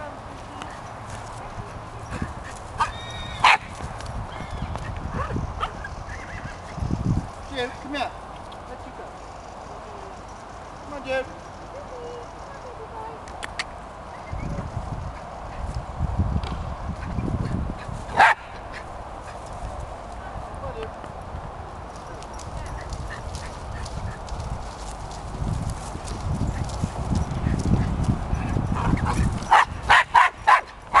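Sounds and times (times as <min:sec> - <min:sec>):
horses moving on grass: 0:00.0 - 0:31.0
dog barking: 0:02.8 - 0:03.6, 0:18.2 - 0:18.4, 0:29.5 - 0:31.0.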